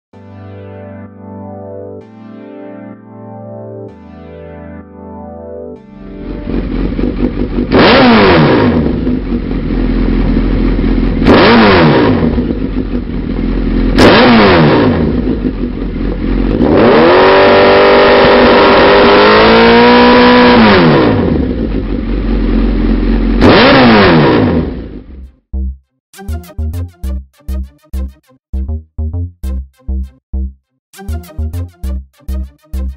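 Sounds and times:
motorcycle engine idling and revving: 0:06.1 - 0:25.7.

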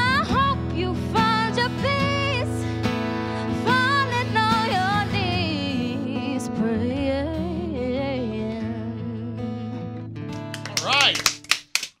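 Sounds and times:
sharp claps: 0:10.3 - 0:12.0.

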